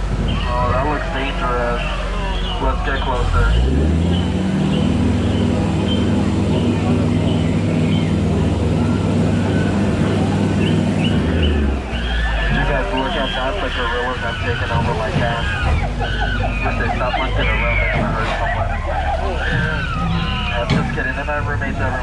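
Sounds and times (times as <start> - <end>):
boat motor humming: 0.0 - 22.0
wavering high animal calls: 0.2 - 22.0.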